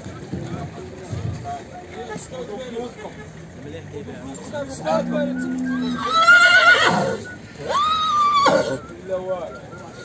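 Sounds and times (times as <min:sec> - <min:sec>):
horse whinnying: 0:04.8 - 0:08.9.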